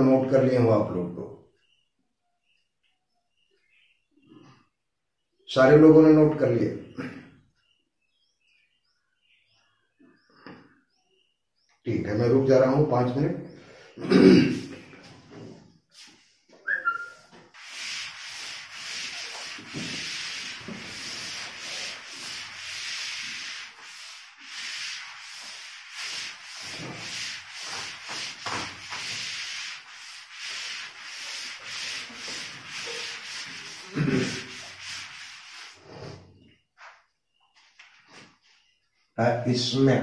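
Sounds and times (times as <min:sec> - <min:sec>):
eraser rubbing whiteboard: 0:16.9 - 0:36.3.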